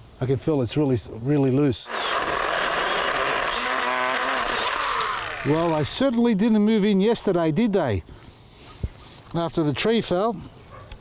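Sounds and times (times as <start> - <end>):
small chainsaw cutting wood: 1.9 - 5.8.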